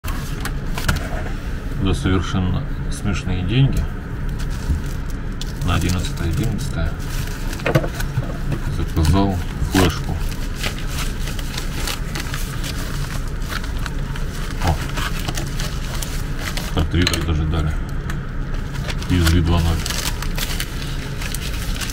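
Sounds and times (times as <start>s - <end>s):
steady low hum: 0.0s - 21.9s
plastic pouch crinkling: 4.2s - 17.3s, 18.5s - 21.9s.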